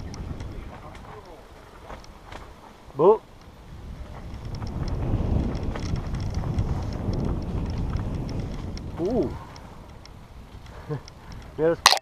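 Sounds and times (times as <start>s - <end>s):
wind buffeting microphone: 0.0s - 11.8s
bike rattling ticks: 0.0s - 12.0s.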